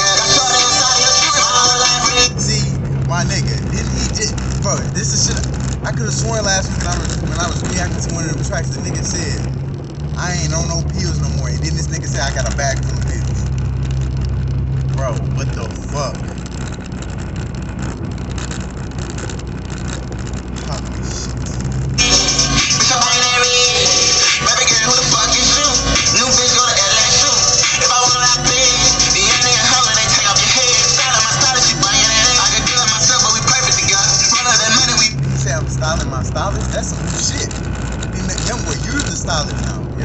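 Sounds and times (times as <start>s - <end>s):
music: 0.0s - 2.4s, 22.0s - 35.1s
car engine hum inside cabin: 0.0s - 40.0s.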